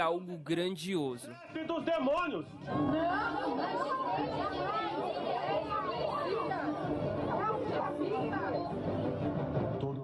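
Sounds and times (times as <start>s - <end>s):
crowd of voices talking: 0.0s - 10.0s.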